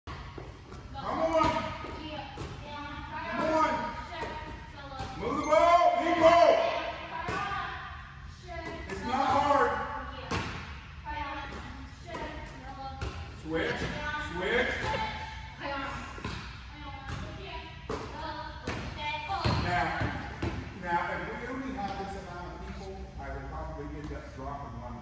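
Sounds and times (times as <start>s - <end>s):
basketballs bouncing on gym floor: 0.2s - 5.4s, 6.1s - 7.7s, 8.5s - 15.2s, 16.2s - 20.8s.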